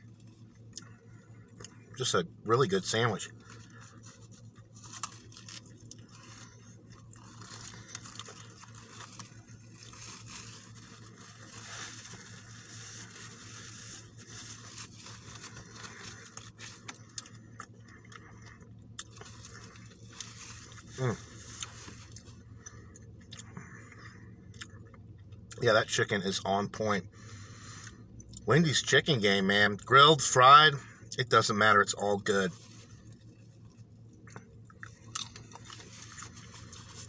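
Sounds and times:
chewing with soft crunches: 0.0s - 25.7s, 27.2s - 28.5s, 32.3s - 37.0s
low steady hum: 0.0s - 37.0s.

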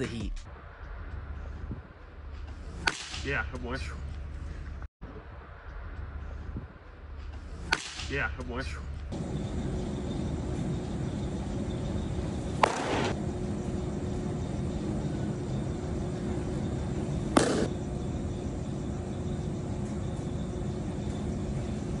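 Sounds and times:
steady hum: 7.4s - 22.0s
baseball popping into mitt: 12.6s - 13.2s, 17.3s - 17.7s.

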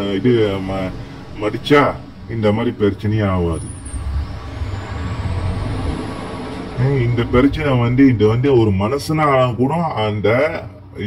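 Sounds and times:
man's voice: 0.0s - 3.7s, 6.8s - 11.0s
faint high whine: 0.0s - 11.0s
low vehicle rumble with hiss: 0.0s - 11.0s.

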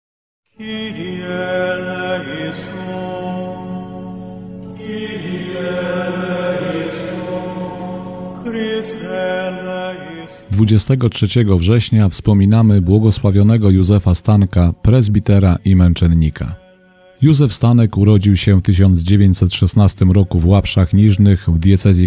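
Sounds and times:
choir chanting: 0.6s - 10.6s.

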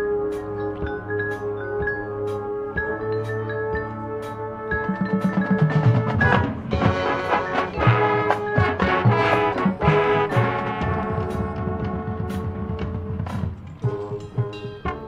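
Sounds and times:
brass holding sustained chords: 1.4s - 5.2s, 5.8s - 15.0s
drum and percussion hits: 3.8s - 15.0s.

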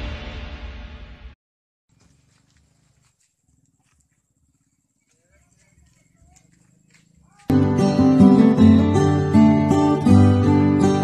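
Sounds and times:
faint ticks: 2.0s - 7.5s.

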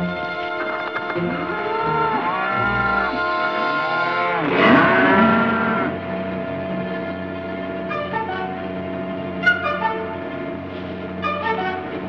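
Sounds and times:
film score with steady notes: 0.0s - 12.0s
cattle mooing: 1.2s - 6.0s.

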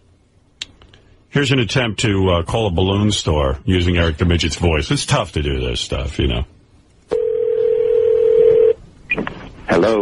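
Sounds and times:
telephone ringing tone: 7.1s - 8.8s.

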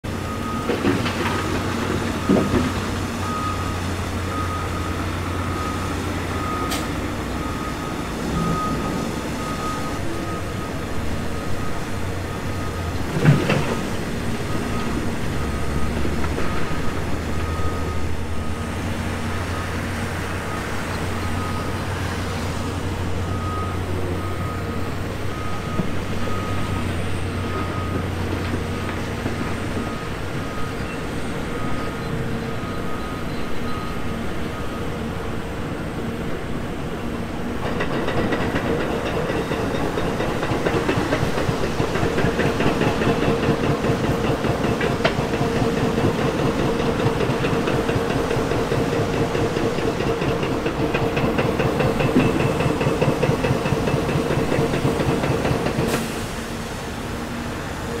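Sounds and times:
diesel machinery engines running: 0.0s - 58.0s
backup alarm beeping: 3.2s - 12.9s.

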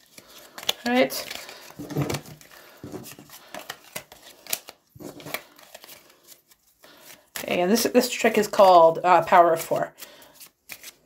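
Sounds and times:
playing cards tapping and sliding: 9.6s - 11.0s.

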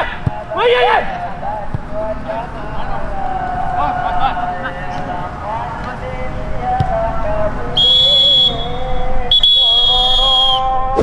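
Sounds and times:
referee's whistle blasts: 7.8s - 11.0s.

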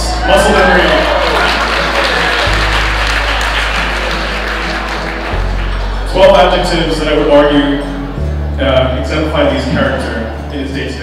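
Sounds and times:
audience applauding: 0.0s - 6.6s
background music with low notes: 0.0s - 11.0s.

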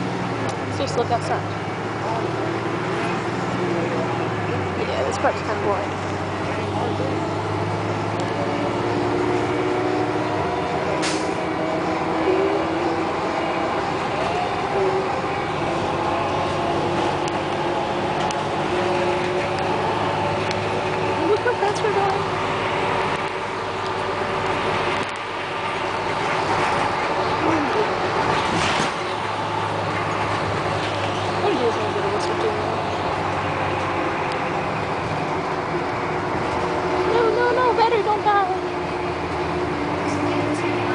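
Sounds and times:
bus engine running: 0.0s - 40.9s
road noise: 0.0s - 40.9s.

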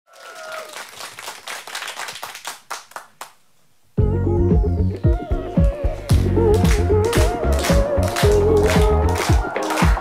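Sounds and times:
hand clapping: 0.7s - 3.4s, 5.0s - 10.0s.

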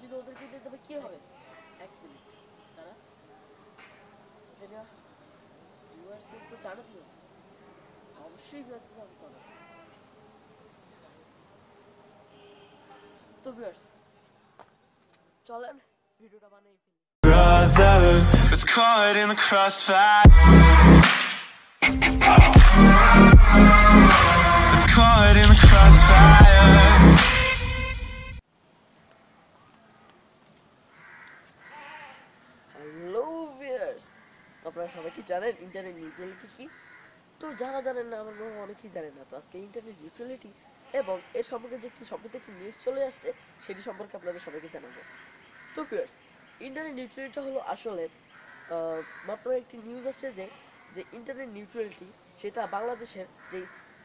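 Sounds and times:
loud voice-like call: 22.0s - 27.7s
soft rustling hiss: 28.4s - 54.0s.

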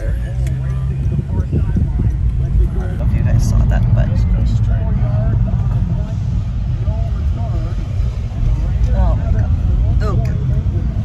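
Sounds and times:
car rumble from inside cabin: 0.0s - 11.0s
quiet talking: 0.0s - 11.0s.

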